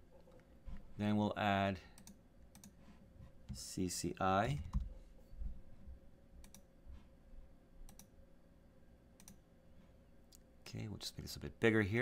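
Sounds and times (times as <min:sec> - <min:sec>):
faint steady hum: 0:00.0 - 0:12.0
computer mouse clicks: 0:02.0 - 0:02.8, 0:06.4 - 0:06.7, 0:07.8 - 0:08.1, 0:09.2 - 0:09.4.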